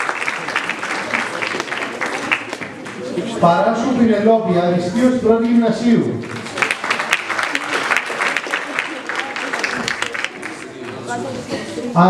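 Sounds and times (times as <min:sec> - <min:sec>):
audience applauding: 0:00.0 - 0:03.4, 0:06.2 - 0:11.2.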